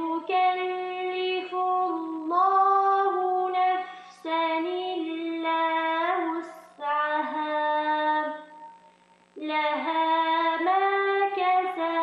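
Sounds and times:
woman reciting melodically with echo: 0.0s - 12.0s.

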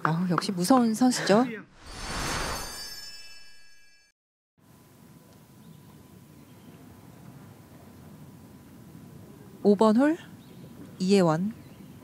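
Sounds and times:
shimmering chime-like ringing: 1.8s - 4.2s
faint outdoor ambience: 4.6s - 12.0s.

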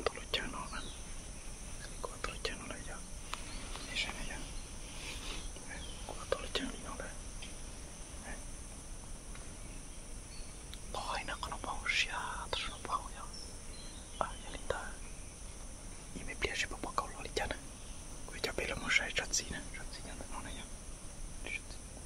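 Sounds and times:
man whispering: 0.0s - 1.0s, 1.8s - 7.2s, 8.2s - 8.5s, 10.8s - 13.4s, 14.2s - 15.0s, 16.1s - 17.6s, 18.3s - 20.7s, 21.4s - 21.8s.

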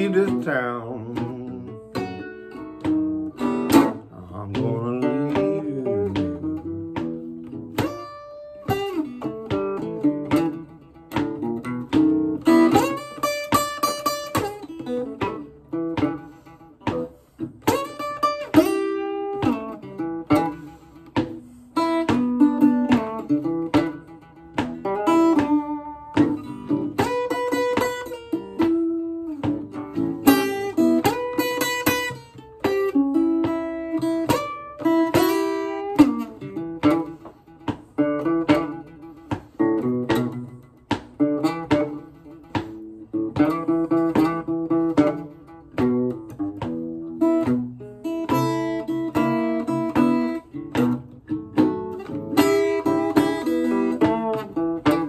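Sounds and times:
acoustic guitar playing blues: 0.0s - 55.0s
stomp board thumps: 1.1s - 55.0s.

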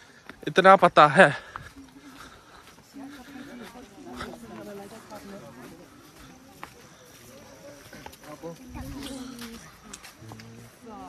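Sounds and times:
distant people chattering: 0.0s - 11.0s.

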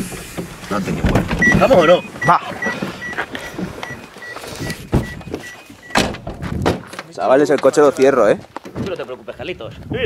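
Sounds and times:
knocks and thumps inside car: 0.3s - 2.9s, 4.8s - 6.8s
car warning chime beeping: 1.4s - 6.0s.

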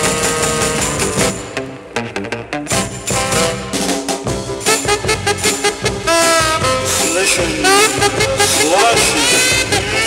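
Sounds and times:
driving drum beat: 0.0s - 10.0s
upbeat instrumental music: 0.0s - 10.0s.

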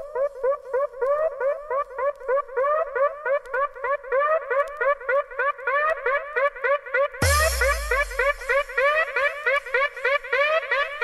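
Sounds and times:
synth riff of gliding stabs: 7.2s - 9.6s.

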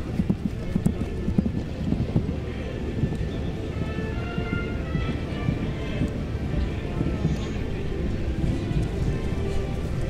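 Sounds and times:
horse hooves thudding on turf: 0.0s - 10.0s.

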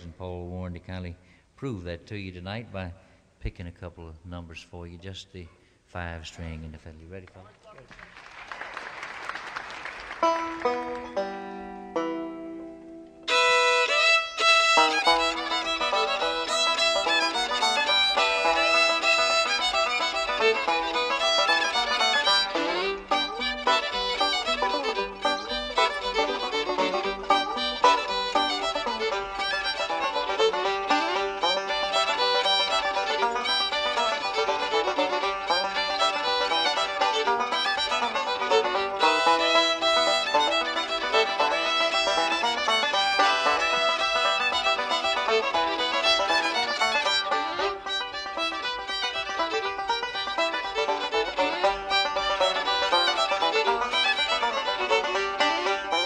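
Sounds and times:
fiddle and banjo playing: 0.0s - 5.5s, 9.3s - 56.0s
applause: 7.4s - 11.1s.

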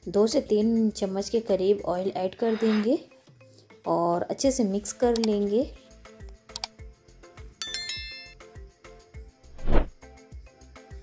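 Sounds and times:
bright ringing chime: 7.6s - 8.4s.

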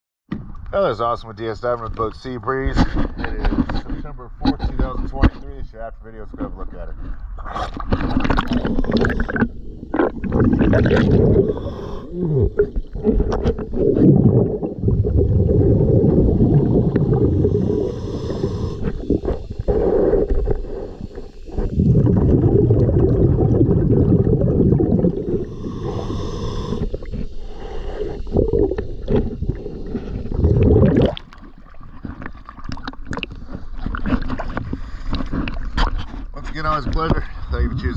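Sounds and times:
exhaled bubbles rumbling underwater: 7.1s - 35.8s
water splashing: 7.6s - 35.9s
regulator hiss: 17.4s - 21.9s, 25.2s - 30.5s.

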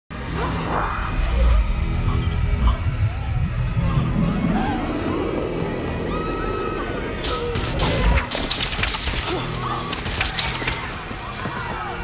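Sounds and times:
film music: 0.1s - 12.0s
low rumble: 0.7s - 8.2s.

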